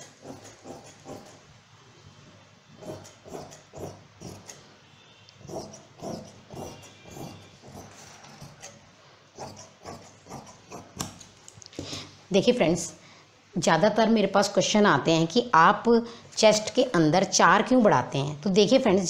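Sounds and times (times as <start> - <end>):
scissors cutting cloth: 0.0 - 1.4, 2.8 - 4.6, 5.5 - 8.8.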